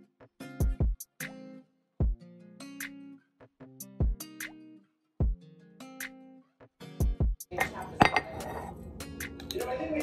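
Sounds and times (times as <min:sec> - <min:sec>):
acoustic guitar music: 0:00.0 - 0:10.0
mug clinking: 0:07.6 - 0:08.8.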